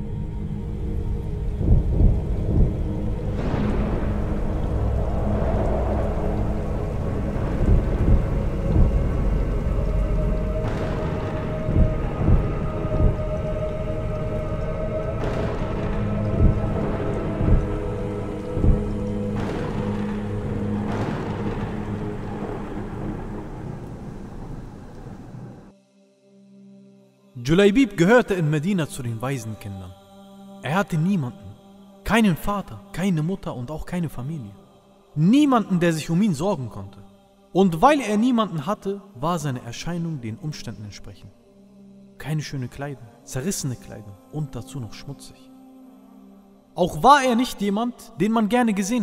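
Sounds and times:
low dark drone with booms: 0.0s - 25.7s
rain and thunder: 1.2s - 25.7s.

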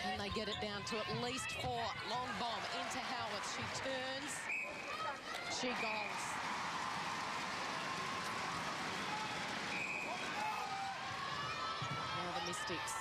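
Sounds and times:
arena crowd cheering: 0.8s - 13.0s
short referee whistle: 9.7s - 10.2s.

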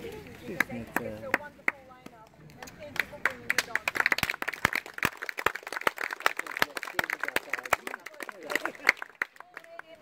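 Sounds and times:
scattered hand-clapping: 0.5s - 10.0s.

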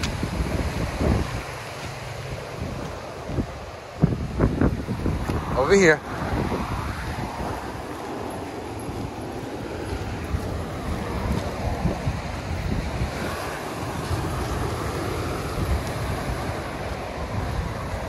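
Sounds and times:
ocean surf washing on beach: 0.0s - 18.0s
wind buffeting microphone: 0.0s - 18.0s.

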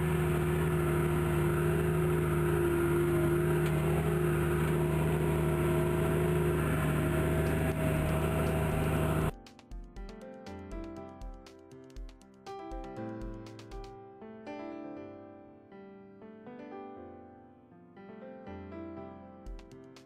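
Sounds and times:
tractor engine running: 0.0s - 9.3s
quiet music: 0.0s - 15.7s.

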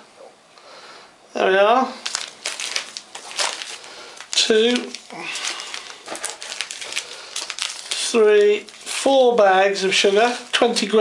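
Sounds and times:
paper sachets crinkling: 2.0s - 11.0s.

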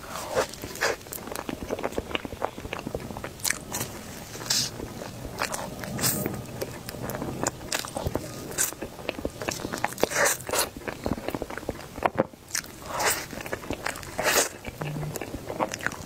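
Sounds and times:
biting and chewing: 0.0s - 16.0s.

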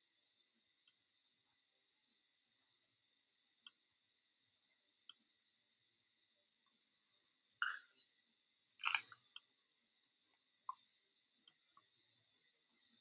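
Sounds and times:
faint high whine: 0.0s - 13.0s.

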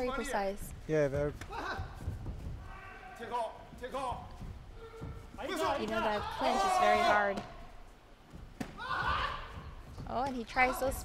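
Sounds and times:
sports hall hum: 0.0s - 11.0s.

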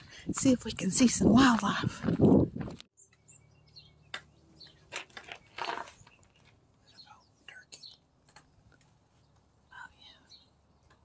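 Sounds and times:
small birds chirping: 2.9s - 11.0s.

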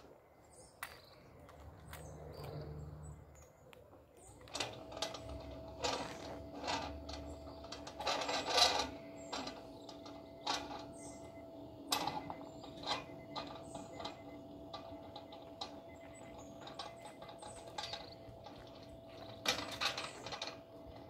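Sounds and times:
gate clicking and rattling on track: 4.3s - 21.0s
gate motor humming: 4.3s - 21.0s.

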